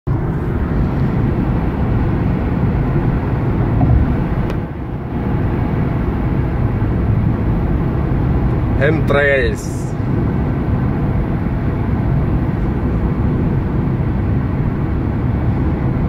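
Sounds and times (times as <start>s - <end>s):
car road and engine rumble: 0.1s - 16.0s.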